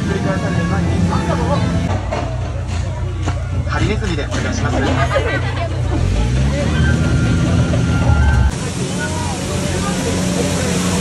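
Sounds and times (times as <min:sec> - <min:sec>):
faint voices: 0:00.0 - 0:11.0
passengers laughing: 0:00.8 - 0:01.9, 0:04.6 - 0:06.2
waterfall rushing: 0:08.5 - 0:11.0.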